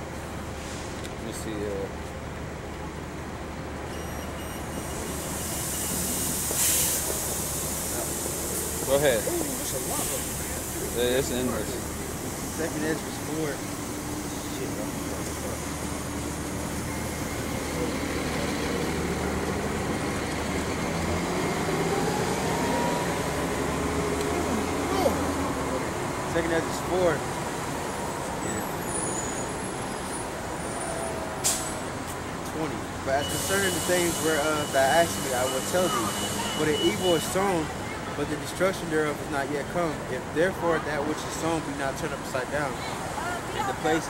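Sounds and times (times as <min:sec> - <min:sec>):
street traffic rumble: 0:00.0 - 0:44.0
short sharp hiss: 0:05.3 - 0:10.9, 0:31.4 - 0:31.8.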